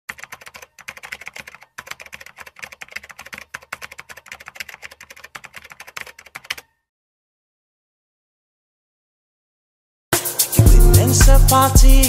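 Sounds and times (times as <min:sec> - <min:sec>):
keyboard key clicks: 0:00.1 - 0:06.6.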